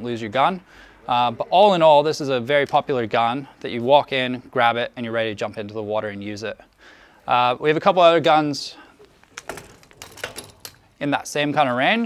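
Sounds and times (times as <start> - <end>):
light clicks and rattles: 9.0 - 11.0.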